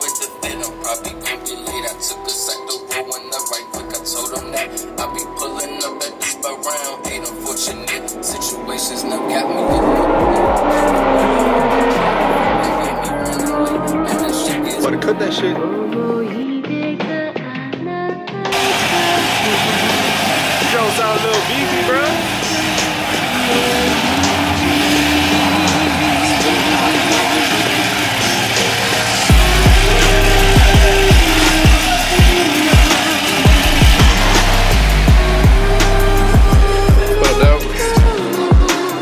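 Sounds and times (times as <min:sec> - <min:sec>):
hip-hop music with heavy bass: 0:00.0 - 0:17.4, 0:18.3 - 0:39.0
car engine running loudly: 0:07.1 - 0:15.6, 0:18.5 - 0:38.2.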